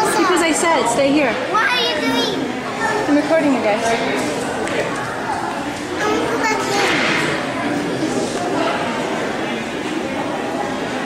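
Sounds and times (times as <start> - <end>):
excited voices talking: 0.0 - 9.1.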